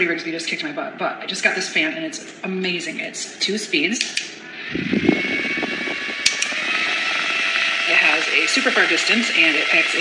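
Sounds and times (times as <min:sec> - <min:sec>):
small fan whirring: 0:03.7 - 0:10.0
sharp clicks: 0:06.2 - 0:06.6.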